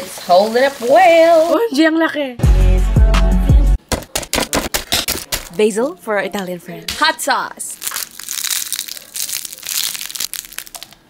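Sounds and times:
crisp fried wrapper crackling: 7.7s - 11.0s.

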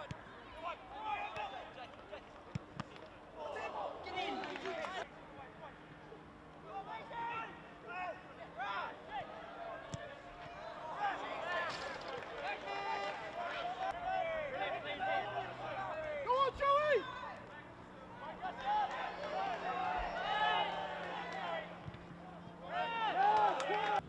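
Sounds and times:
voices shouting outdoors: 6.6s - 24.0s.

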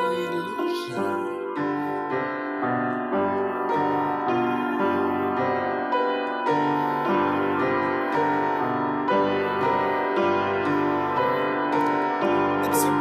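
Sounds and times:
piano music: 0.0s - 13.0s.

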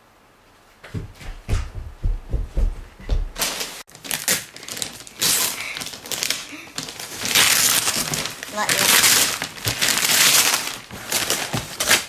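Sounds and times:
low thumps: 0.9s - 3.4s
wrapping paper crinkling and tearing: 3.4s - 12.0s.

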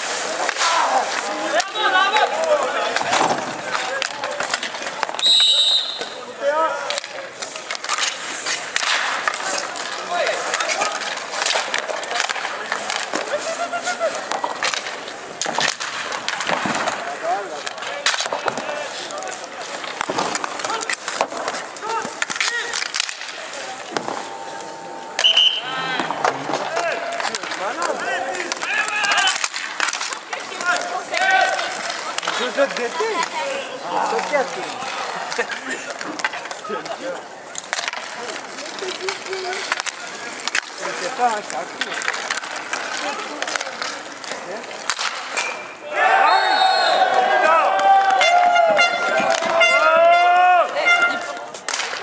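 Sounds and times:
sticks and puck clacking: 0.0s - 45.8s, 47.0s - 52.0s
skate wheels rolling: 0.0s - 52.0s
referee's whistle: 5.2s - 6.2s, 25.2s - 25.9s, 46.2s - 47.1s
people calling out: 23.6s - 27.1s, 45.8s - 51.4s.

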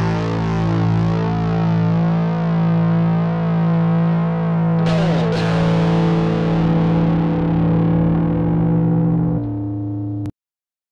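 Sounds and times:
distorted guitar chords: 0.0s - 10.3s.

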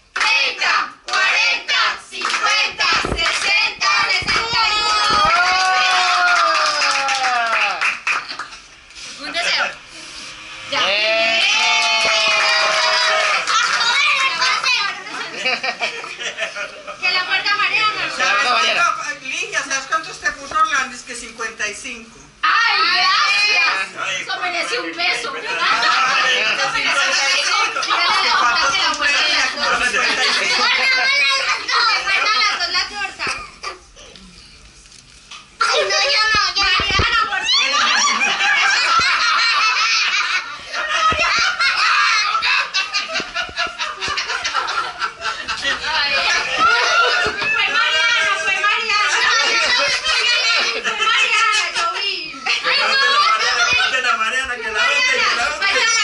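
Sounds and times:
family cheering: 0.2s - 8.2s, 10.7s - 15.0s, 35.6s - 43.2s, 45.6s - 51.8s
group of people laughing: 15.1s - 17.1s, 25.4s - 33.9s, 37.4s - 54.2s.

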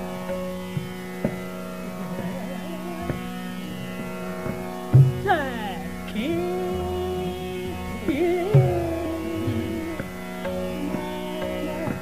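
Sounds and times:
soft wavering melodic line: 0.0s - 12.0s
tabla strokes: 0.0s - 12.0s
tanpura drone: 0.0s - 12.0s.

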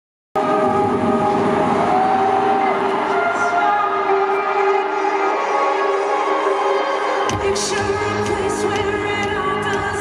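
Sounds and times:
stadium crowd cheering: 0.4s - 5.4s.

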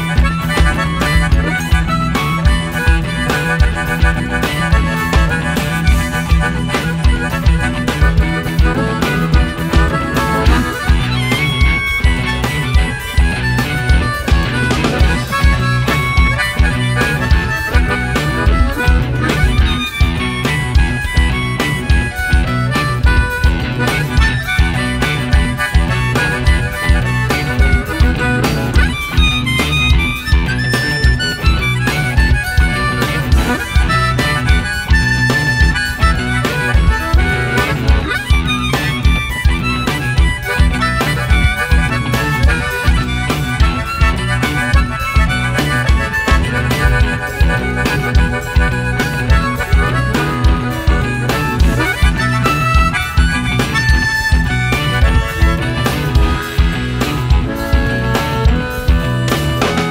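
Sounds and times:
harmonica lead: 0.0s - 59.9s
live band playing: 0.0s - 59.9s.

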